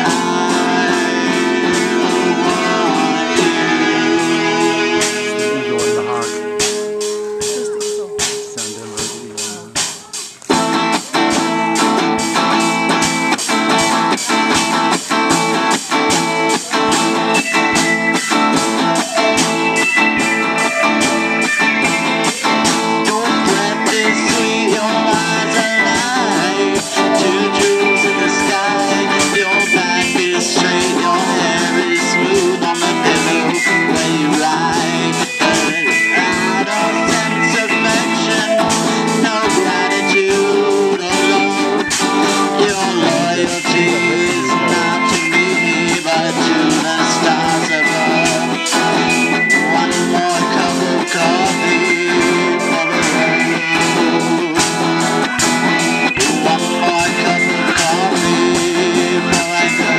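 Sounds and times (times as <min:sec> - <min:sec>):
drum kit beat: 0:00.0 - 0:59.9
electric guitars: 0:00.0 - 0:59.9.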